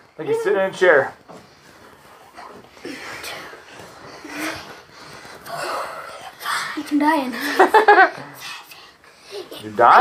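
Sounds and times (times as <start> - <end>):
children breathing hard: 2.4 - 6.2.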